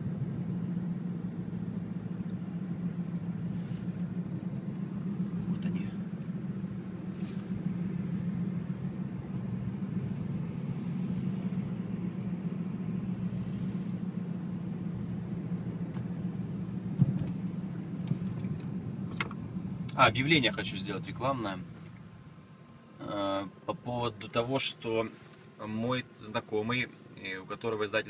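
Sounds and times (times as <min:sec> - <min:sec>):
car engine and tyre rumble: 0:00.0 - 0:28.0.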